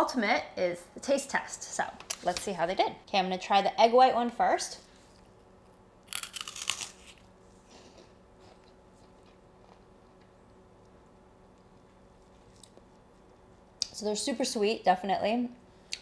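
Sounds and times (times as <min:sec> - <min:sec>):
faint chewing: 0:05.0 - 0:13.9
meringue crunching: 0:05.2 - 0:07.3.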